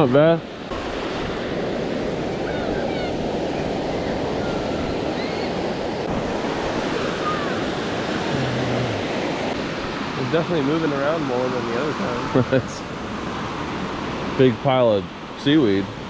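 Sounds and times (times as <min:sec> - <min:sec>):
ocean surf washing onto beach: 0:00.0 - 0:16.0.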